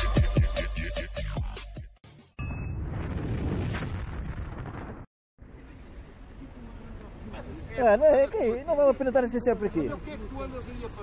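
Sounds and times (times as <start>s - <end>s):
low rumbling explosion: 2.4s - 5.1s
street noise: 5.4s - 11.0s.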